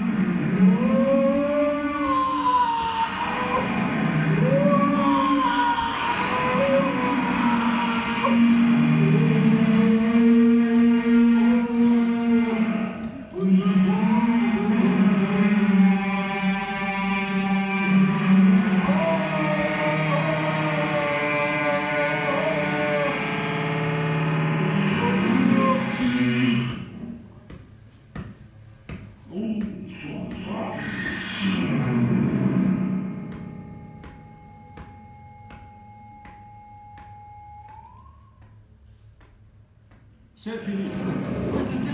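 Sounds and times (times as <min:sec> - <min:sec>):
wavering electronic drone tones: 0:03.3 - 0:27.1, 0:30.5 - 0:38.7.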